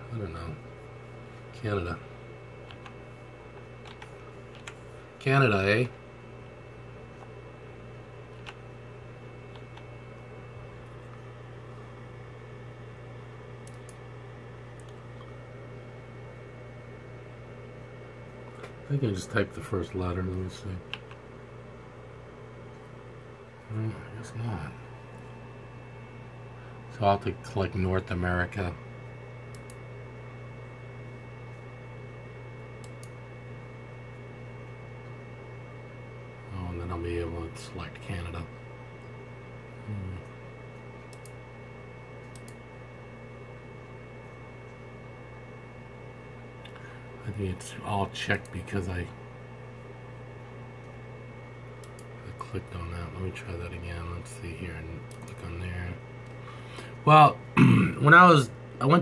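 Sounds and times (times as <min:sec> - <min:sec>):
low room hum: 0:00.0 - 0:59.0
keyboard and mouse clicks: 0:03.8 - 0:04.8, 0:42.2 - 0:42.6.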